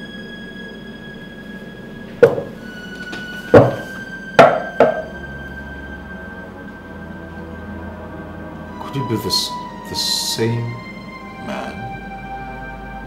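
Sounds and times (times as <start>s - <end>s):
dramatic score sustained tones: 0.0s - 13.0s
sharp percussive hits: 4.4s - 5.2s.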